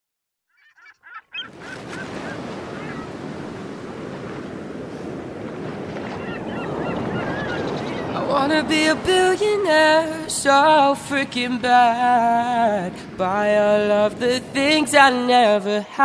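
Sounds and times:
birds calling: 0:00.5 - 0:04.7, 0:06.0 - 0:08.4
waves on shingle beach: 0:01.4 - 0:15.7.

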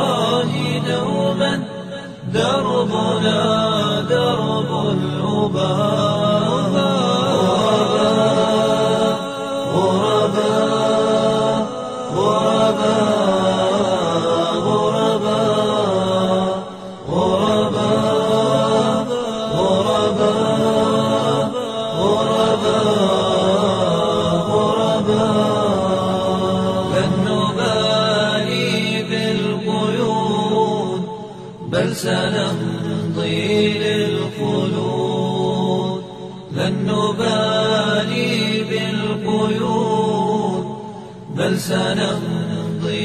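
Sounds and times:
male voices singing a cappella: 0:00.0 - 0:43.0.

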